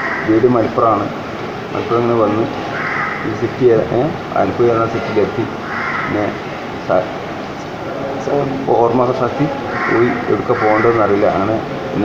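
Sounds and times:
man speaking: 0.3 - 2.6, 3.2 - 12.0
harsh hoarse call: 7.8 - 12.0.

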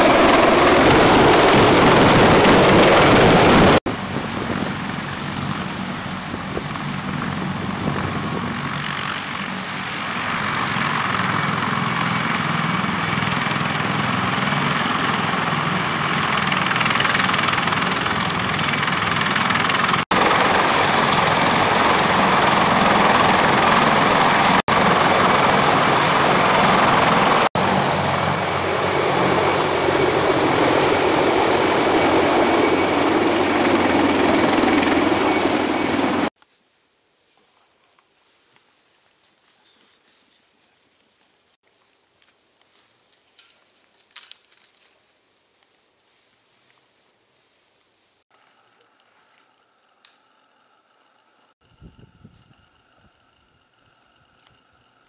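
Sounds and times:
helicopter rotor and engine: 0.0 - 36.4.

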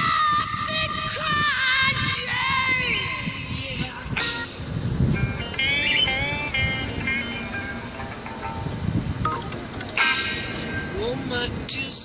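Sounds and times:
background music with bending melody: 2.2 - 11.3.

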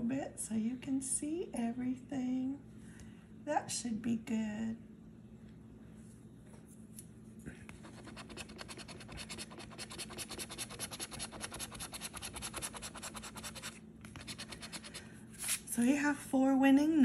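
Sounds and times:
scraper rubbing lottery ticket: 7.7 - 15.6.

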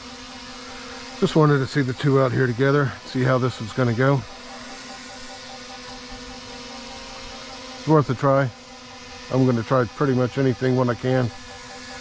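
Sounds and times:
drone propellers humming: 0.0 - 12.0.

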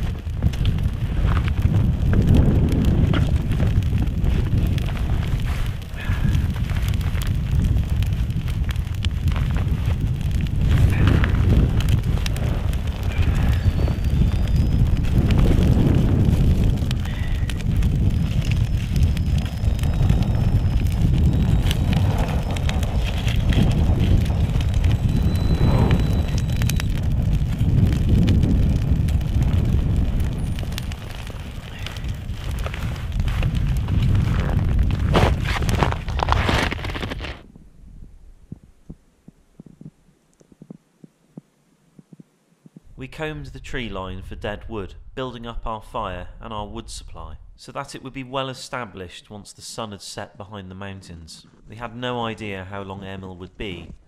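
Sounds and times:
twig fire crackling and popping: 0.0 - 37.5, 42.0 - 45.6, 51.4 - 54.0
wind buffeting microphone: 0.0 - 39.0.

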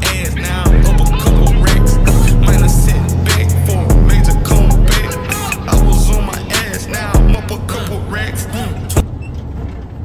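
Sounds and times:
rap music with vocals: 0.0 - 9.0
truck engine and road drone: 0.0 - 10.0.

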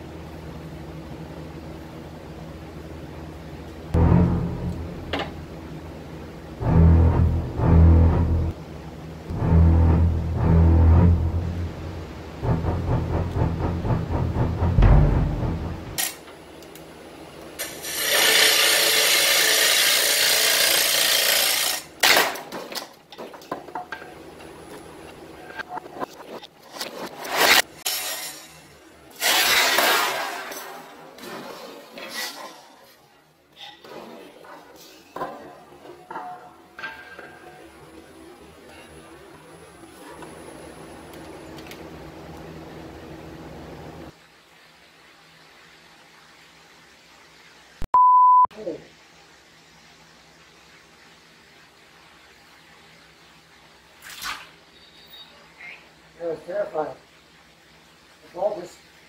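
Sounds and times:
background music: 4.0 - 5.5, 6.6 - 8.6, 9.3 - 16.0
sharp knocks: 12.4 - 16.0.

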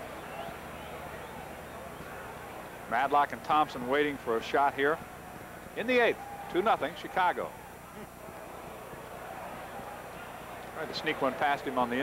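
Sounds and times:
murmur of crowd: 0.0 - 12.0.

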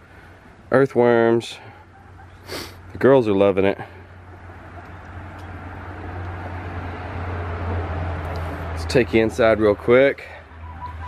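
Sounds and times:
vehicle engine rumble with hiss: 3.7 - 11.0.

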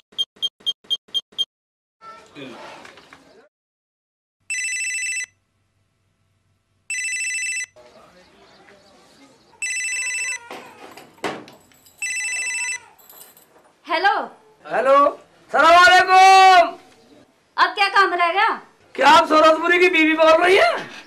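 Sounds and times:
cordless phone ringing: 4.5 - 5.4, 6.9 - 7.8, 9.6 - 10.5, 12.0 - 12.9.

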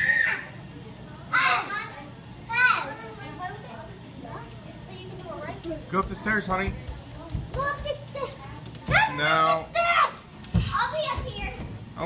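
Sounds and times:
children playing hubbub: 6.8 - 11.8.

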